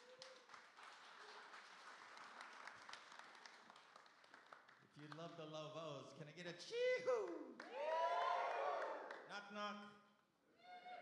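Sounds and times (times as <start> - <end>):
congregation applauding faintly: 0.0 - 5.5.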